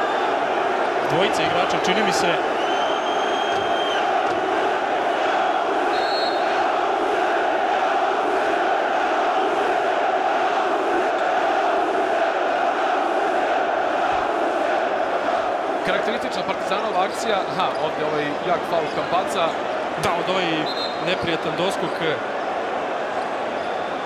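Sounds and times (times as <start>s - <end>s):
arena crowd chanting and shouting: 0.0s - 24.0s.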